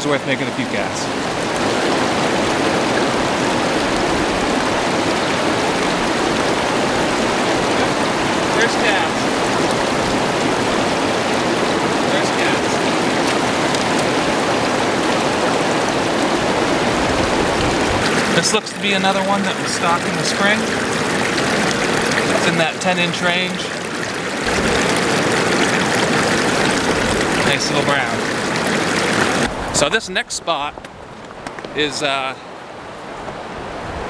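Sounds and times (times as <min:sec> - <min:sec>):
river rapids rushing: 0:00.0 - 0:30.6.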